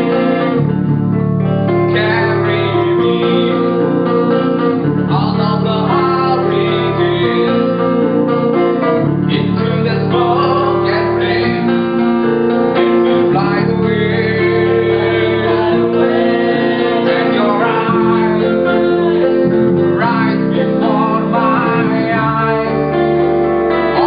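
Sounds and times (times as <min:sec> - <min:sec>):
person singing: 0:00.0 - 0:00.8, 0:01.4 - 0:24.0
metal guitars playing chords: 0:00.0 - 0:24.0.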